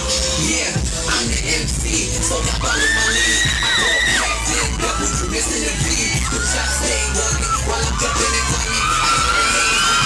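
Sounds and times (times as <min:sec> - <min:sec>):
hip-hop beat over speakers: 0:00.0 - 0:10.0
crowd cheering: 0:02.2 - 0:10.0
high-pitched scream: 0:02.4 - 0:10.0.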